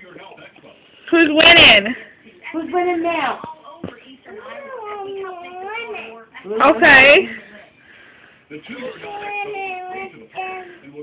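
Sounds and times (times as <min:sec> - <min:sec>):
toddler whining: 0:04.4 - 0:06.2, 0:09.0 - 0:10.6.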